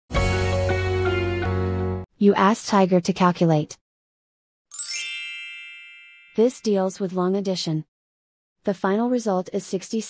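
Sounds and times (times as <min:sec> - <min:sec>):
bright chime sound effect: 0:04.7 - 0:06.7.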